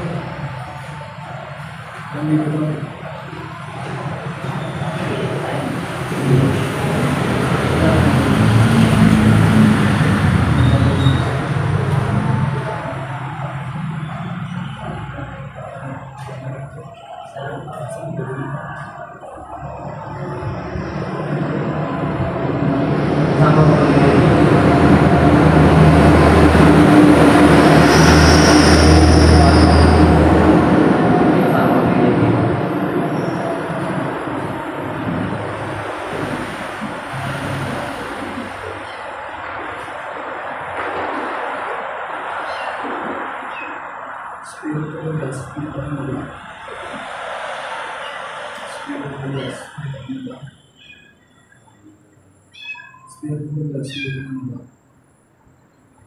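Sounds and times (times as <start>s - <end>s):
heavy vehicle rumbling past: 0.0s - 50.6s
brief high squeal: 10.5s - 11.5s, 27.8s - 30.2s.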